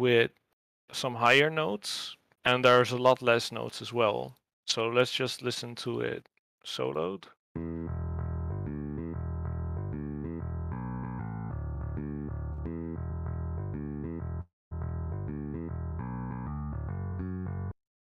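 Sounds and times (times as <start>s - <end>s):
electric bass rock riff: 7.6s - 17.7s.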